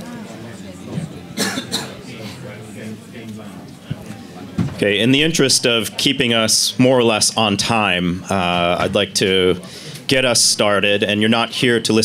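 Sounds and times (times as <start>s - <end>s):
low murmur of voices: 0.0s - 12.0s
person coughing: 1.4s - 2.1s.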